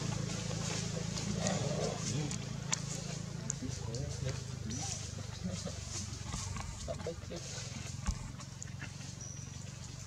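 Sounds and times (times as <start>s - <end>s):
low outdoor rumble: 0.0s - 10.0s
soft monkey calls: 0.8s - 6.8s.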